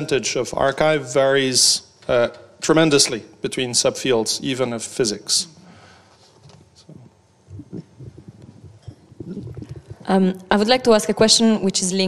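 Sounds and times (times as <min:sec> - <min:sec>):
faint low rustling: 0:05.4 - 0:10.3
soft bumps: 0:06.4 - 0:10.1.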